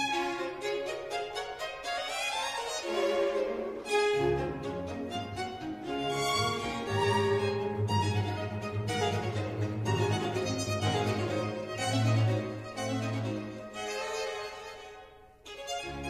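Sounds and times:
low string notes: 0.0s - 14.8s
slow violin melody: 0.0s - 16.0s.

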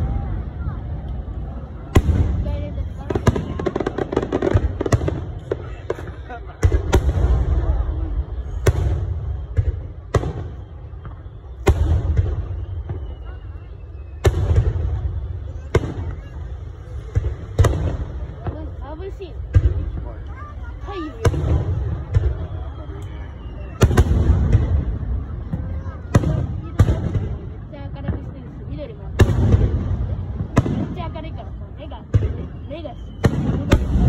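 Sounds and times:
firework booms: 1.7s - 34.0s.

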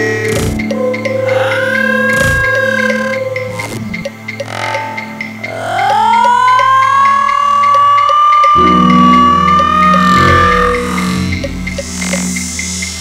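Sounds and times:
ticking pulse: 0.0s - 13.0s
low bass drone: 3.7s - 13.0s
synth tone gliding upward: 4.8s - 12.9s.

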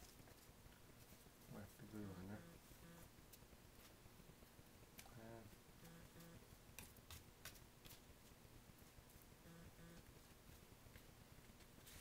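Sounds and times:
man humming murmurs: 2.1s - 3.1s, 5.1s - 6.4s.

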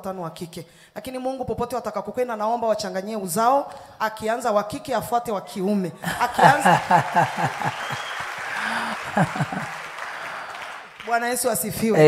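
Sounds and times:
congregation applauding: 6.2s - 12.0s.

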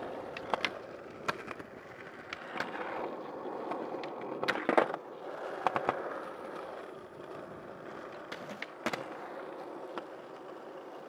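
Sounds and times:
skateboard wheels rolling on asphalt: 0.0s - 11.0s
skateboard knocking on ground: 0.2s - 6.2s, 8.0s - 10.2s.

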